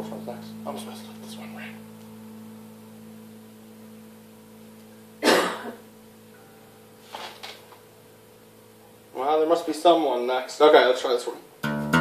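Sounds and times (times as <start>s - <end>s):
low electrical hum: 0.0s - 12.0s
man coughing: 5.2s - 5.8s
throat clearing: 5.2s - 5.8s.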